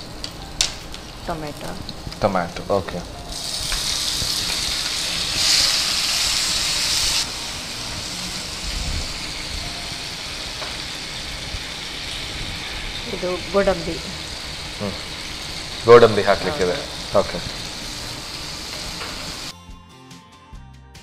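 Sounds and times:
food sizzling in hot oil: 0.0s - 19.5s.

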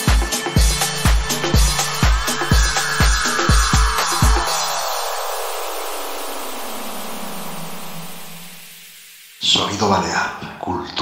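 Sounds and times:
falling white-noise sweep: 0.0s - 10.2s.

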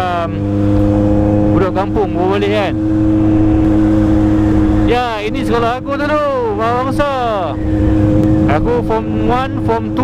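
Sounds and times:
motorcycle engine cruising: 0.0s - 10.0s
wind rush on microphone: 2.6s - 10.0s.

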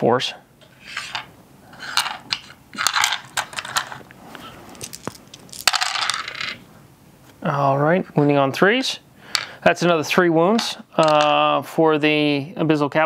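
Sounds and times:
dice rattling in wooden tray: 1.1s - 4.0s, 4.7s - 6.6s.

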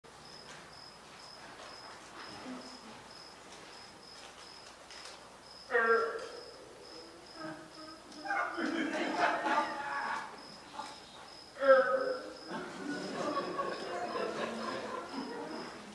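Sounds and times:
cricket chirping: 0.1s - 15.9s.

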